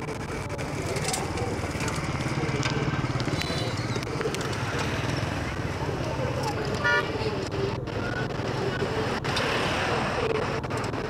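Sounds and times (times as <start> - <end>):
pocket bike engine running: 0.0 - 7.5.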